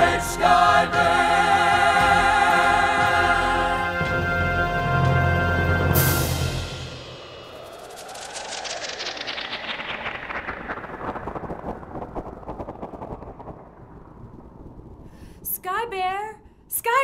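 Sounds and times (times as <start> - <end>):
rumble with rapid crackling: 6.6 - 15.7.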